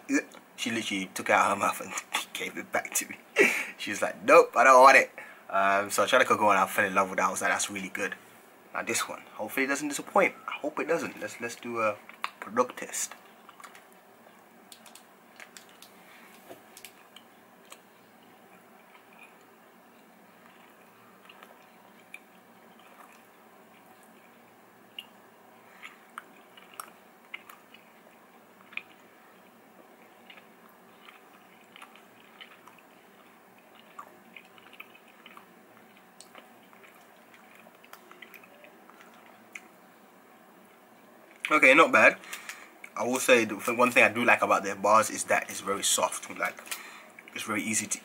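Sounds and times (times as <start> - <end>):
chewing soft food: 11.1 - 41.5, 46.4 - 47.4
mouth clicks and smacks: 12.0 - 14.0, 14.7 - 16.0.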